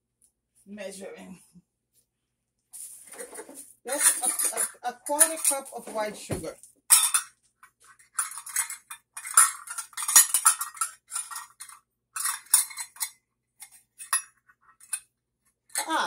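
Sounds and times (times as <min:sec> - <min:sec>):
metal measuring cups clinking: 0:03.1 - 0:06.3, 0:06.9 - 0:15.0, 0:15.7 - 0:16.0.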